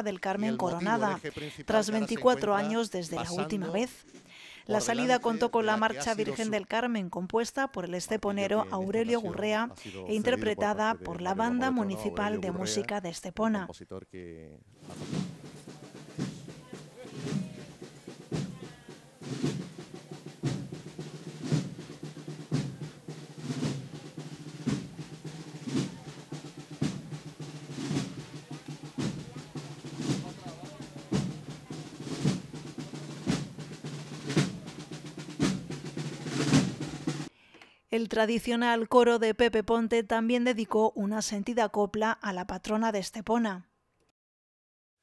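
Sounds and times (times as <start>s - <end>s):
bass drum beat: 0.1s - 3.9s, 4.7s - 6.6s, 8.2s - 12.9s, 14.8s - 37.3s
snare drum rolls: 14.8s - 37.3s.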